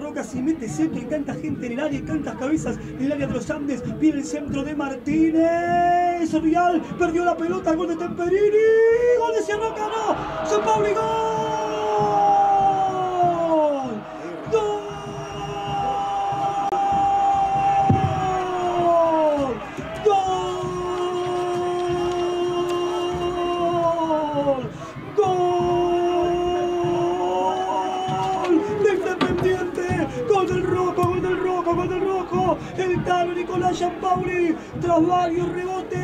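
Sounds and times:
excited shouting: 9.0 - 34.2.

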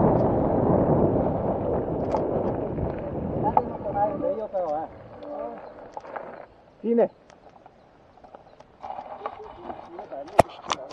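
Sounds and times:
bicycle tyres on gravel: 0.0 - 6.6.

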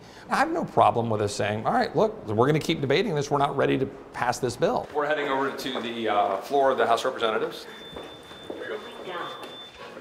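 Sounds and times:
footsteps on hard floor: 5.5 - 6.8, 7.7 - 10.0.

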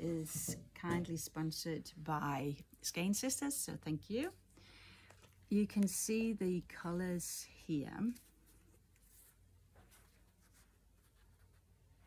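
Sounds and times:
yarn rustling and handling: 7.7 - 12.0.

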